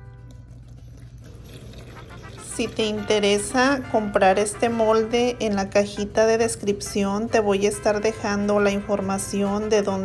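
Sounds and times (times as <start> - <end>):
liquid pouring into plastic mold: 0.0 - 3.9
background music: 0.0 - 10.0.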